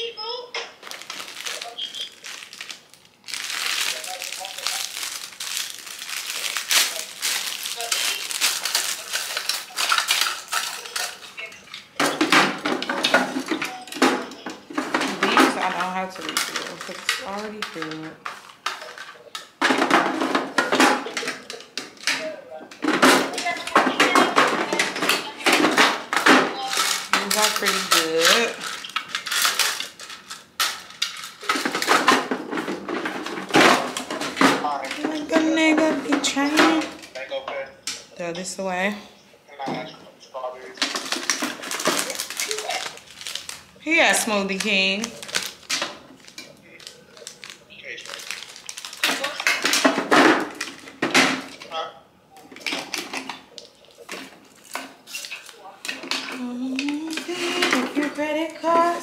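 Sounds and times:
plastic packaging crinkling: 0.3s - 38.7s, 40.6s - 51.7s, 52.4s - 59.0s
plastic clattering and knocking: 12.0s - 37.2s, 40.8s - 43.6s, 44.6s - 51.7s.

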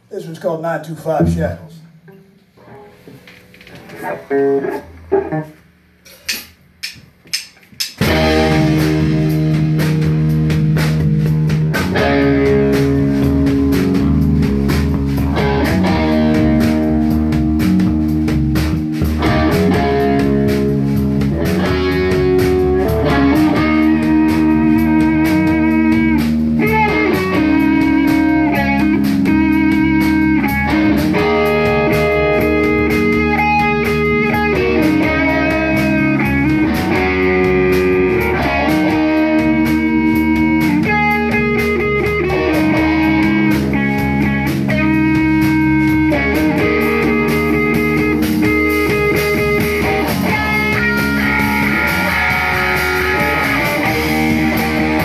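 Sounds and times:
bass guitar: 0.0s - 55.0s
drums: 0.0s - 55.0s
distorted electric guitars: 1.0s - 6.8s, 7.9s - 55.0s.

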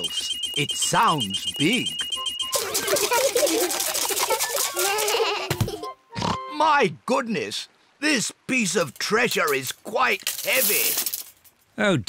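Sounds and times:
cartoon metal detector beeping: 0.0s - 5.2s
cartoon children chattering and squealing: 2.5s - 5.6s.

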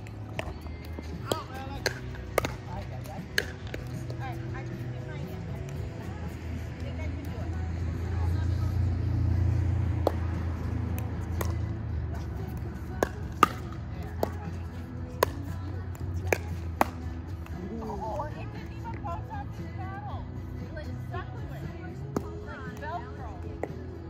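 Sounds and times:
paddles hitting plastic ball: 0.3s - 4.2s, 12.5s - 14.4s, 15.2s - 17.5s.

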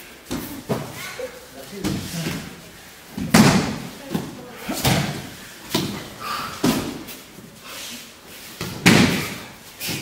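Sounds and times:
bodies slapping onto mats: 1.8s - 7.2s, 8.5s - 10.0s.

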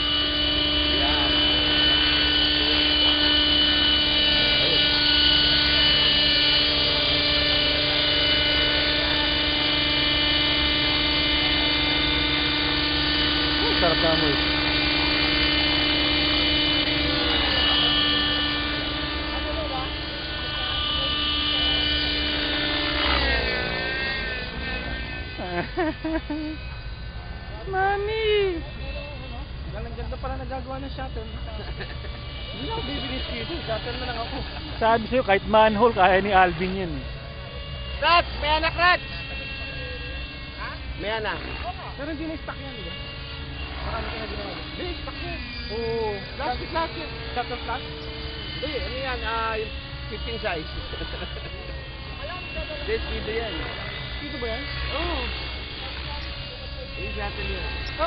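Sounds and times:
radio-controlled helicopter whine: 0.0s - 58.0s
voices calling out: 0.0s - 58.0s.

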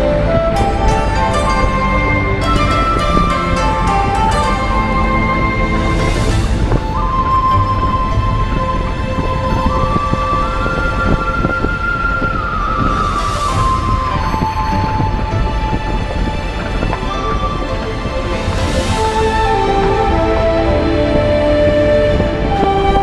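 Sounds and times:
held melody line: 0.0s - 23.0s
soft high wash: 0.0s - 23.0s.

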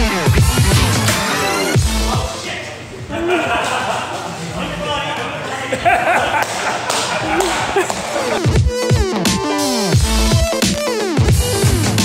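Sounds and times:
electronic music: 0.0s - 2.5s, 7.3s - 12.0s.

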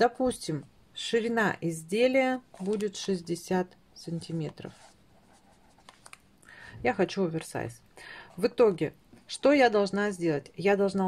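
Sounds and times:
marker scratching on paper: 4.2s - 6.1s.

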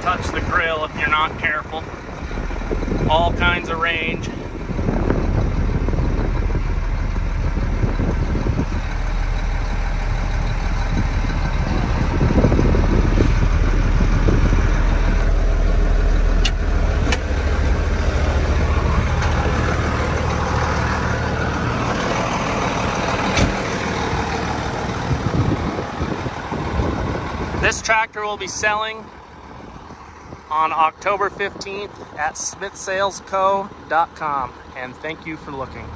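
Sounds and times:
diesel tractor engine running: 0.0s - 35.9s.

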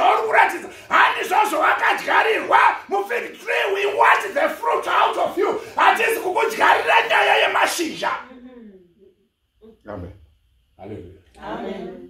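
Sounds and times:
man preaching loudly: 0.0s - 8.2s.

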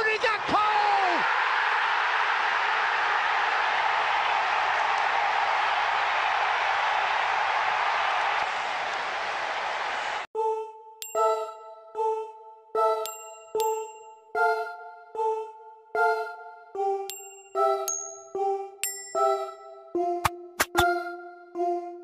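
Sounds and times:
bright bell-like chimes: 11.0s - 11.8s, 12.9s - 14.8s, 17.1s - 19.9s.

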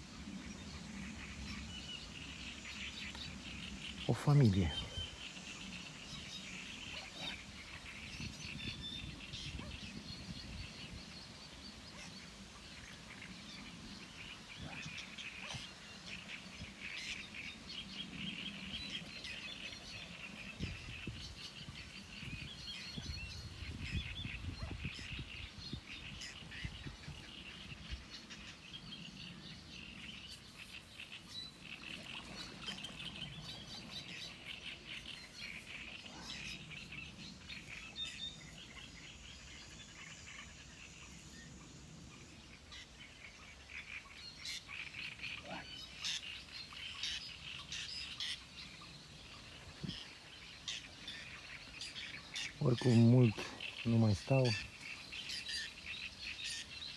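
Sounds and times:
small birds chirping: 0.2s - 56.9s.

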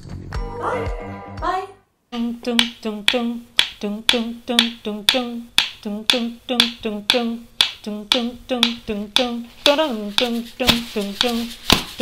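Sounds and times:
person singing low dun notes: 2.1s - 12.0s
wooden spoon taps: 2.6s - 12.0s.

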